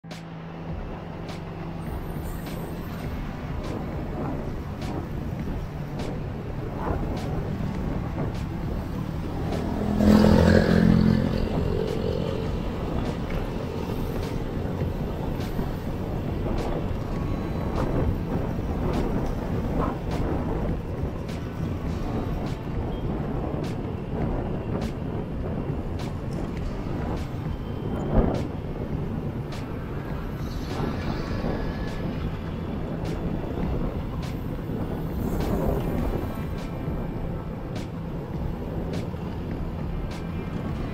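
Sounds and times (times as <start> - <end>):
road and wind noise: 0.0 - 40.9
motorcycle engine running: 0.2 - 40.9.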